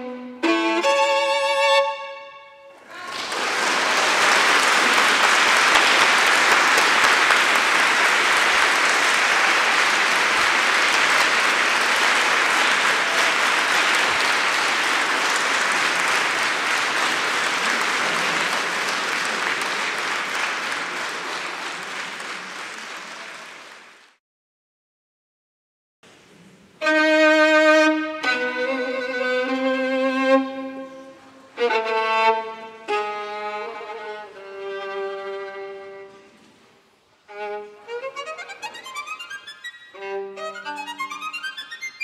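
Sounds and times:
violin note: 0:00.0 - 0:02.8
audience applauding: 0:02.8 - 0:24.2.

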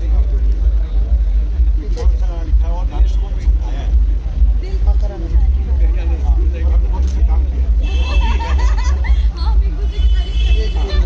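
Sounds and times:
deep low rumble: 0:00.0 - 0:10.3
people talking: 0:00.0 - 0:11.0.

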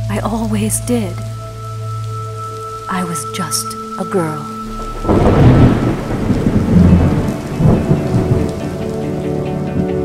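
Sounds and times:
heavy rain: 0:00.0 - 0:10.0
soft music: 0:00.0 - 0:10.0
deep thunder rolls: 0:04.7 - 0:08.9.

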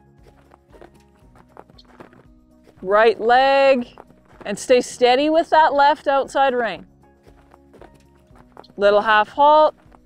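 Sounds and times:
horse hoofbeats on sand: 0:00.0 - 0:10.0
quiet background music: 0:00.0 - 0:10.0.

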